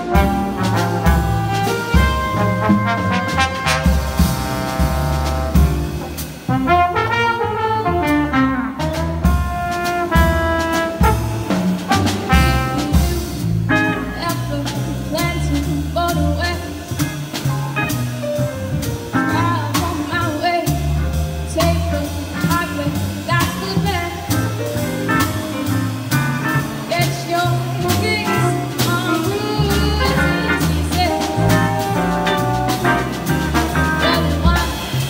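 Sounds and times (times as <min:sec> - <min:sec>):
jazz combo playing swing: 0:00.0 - 0:35.0
young woman singing: 0:26.9 - 0:31.5.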